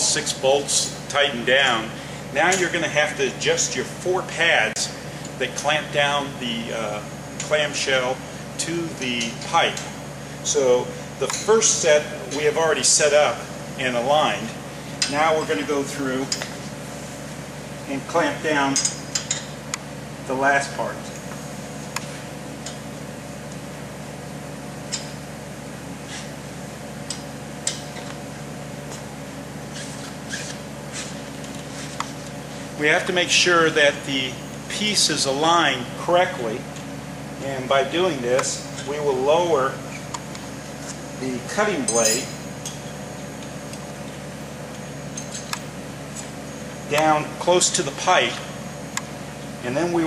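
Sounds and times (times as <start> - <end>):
steady background hum: 0.0 - 50.0.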